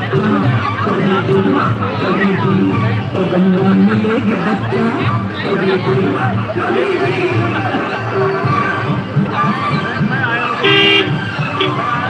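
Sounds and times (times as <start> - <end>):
crowd chatter: 0.0 - 12.0
horn tooting: 10.5 - 12.0.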